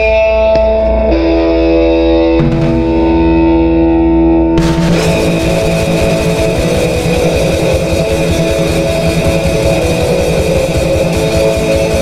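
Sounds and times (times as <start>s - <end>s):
bass guitar: 0.0s - 12.0s
distorted electric guitar: 0.0s - 12.0s
fast drumming: 2.4s - 3.4s, 4.6s - 12.0s
cymbal wash: 2.4s - 12.0s.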